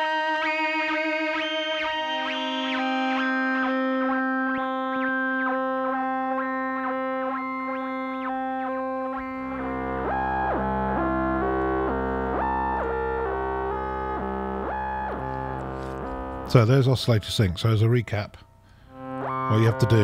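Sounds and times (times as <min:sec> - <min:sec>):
synthesizer held note: 0:09.2 - 0:16.8, 0:18.9 - 0:20.0
low synth bass note: 0:09.4 - 0:16.6, 0:18.9 - 0:20.0.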